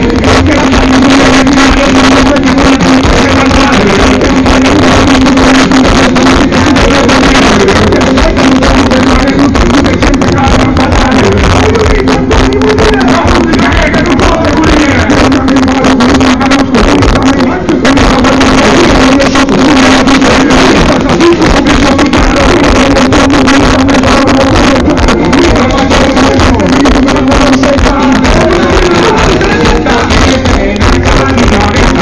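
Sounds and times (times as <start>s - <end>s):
distorted live band music: 0.0s - 32.0s.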